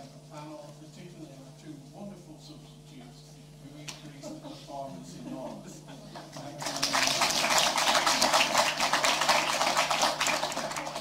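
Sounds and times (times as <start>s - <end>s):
audience applauding: 6.6s - 11.0s.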